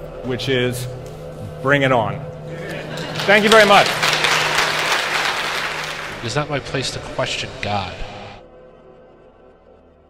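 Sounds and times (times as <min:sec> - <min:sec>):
audience applauding: 0:02.5 - 0:08.0.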